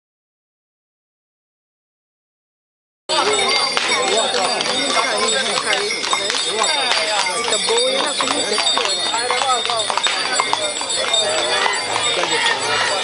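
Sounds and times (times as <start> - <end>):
crowd chatter: 3.1 - 13.0
horse hooves on paved road: 3.1 - 13.0.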